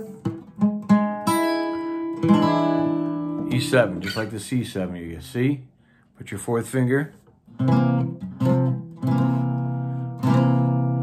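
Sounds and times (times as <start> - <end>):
acoustic guitar chords ringing: 0.0 - 4.5, 7.5 - 11.0.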